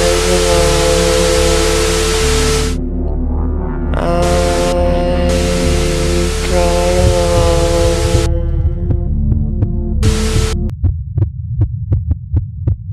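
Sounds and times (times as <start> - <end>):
tv static hiss: 0.0 - 2.8, 4.2 - 8.3, 10.0 - 10.6
droning music tones: 0.0 - 10.7
heartbeat sound effect: 0.0 - 12.9
low hum: 0.0 - 12.9.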